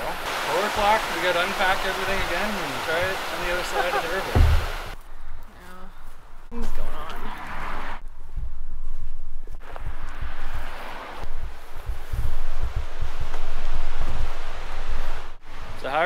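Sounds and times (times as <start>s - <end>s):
wind buffeting microphone: 6.4s - 15.9s.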